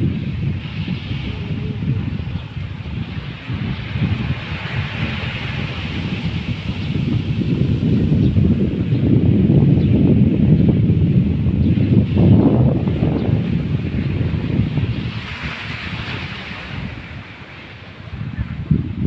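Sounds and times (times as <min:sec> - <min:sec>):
wind buffeting microphone: 0:00.0 - 0:19.0
wind hissing through palm fronds: 0:00.0 - 0:19.0.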